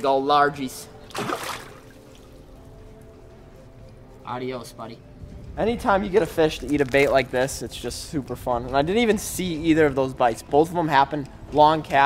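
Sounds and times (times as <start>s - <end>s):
fish splashing in water: 1.1s - 2.3s.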